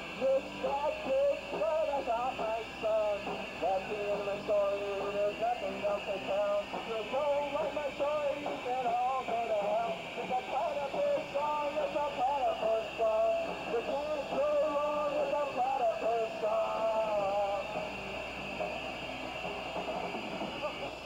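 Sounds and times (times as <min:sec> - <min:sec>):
man singing into a microphone: 0:00.2 - 0:17.8.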